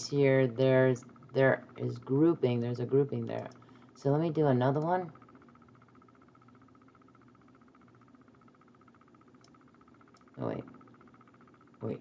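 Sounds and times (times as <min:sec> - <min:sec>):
faint steady hum: 0:00.0 - 0:12.0
faint clicks: 0:09.4 - 0:11.0.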